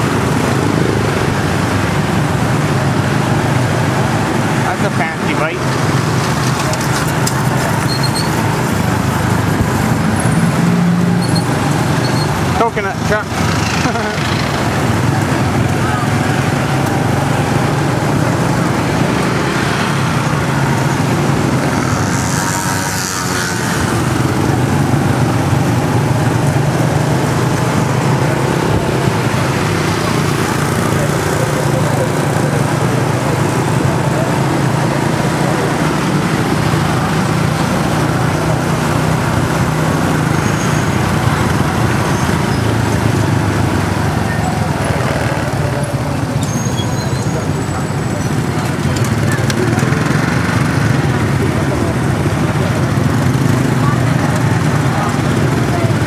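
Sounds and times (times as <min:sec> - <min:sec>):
hum of motorbike traffic: 0:00.0 - 0:56.0.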